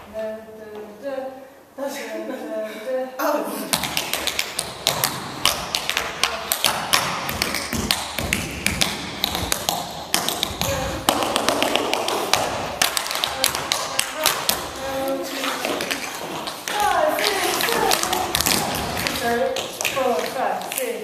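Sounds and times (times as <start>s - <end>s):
heavy thuds: 3.8s - 20.2s
tap shoes on wooden floor: 3.8s - 21.0s.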